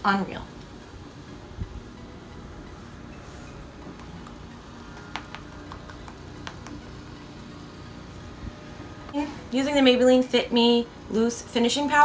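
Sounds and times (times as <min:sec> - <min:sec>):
low steady hum: 0:00.0 - 0:12.0
makeup sponge dabbing clicks: 0:05.1 - 0:06.8.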